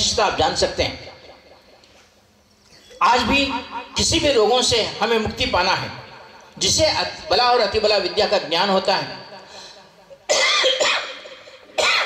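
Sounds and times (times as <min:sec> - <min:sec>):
man coughing: 0:10.3 - 0:12.0.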